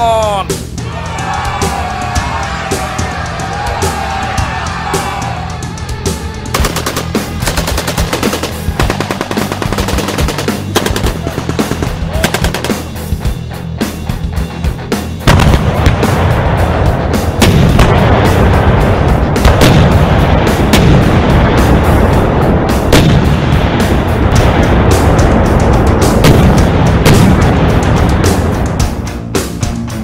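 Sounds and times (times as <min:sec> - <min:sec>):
background music: 0:00.0 - 0:30.0
rapid gunfire: 0:06.5 - 0:13.2, 0:15.3 - 0:16.4, 0:17.4 - 0:21.8
explosions: 0:15.2 - 0:29.0.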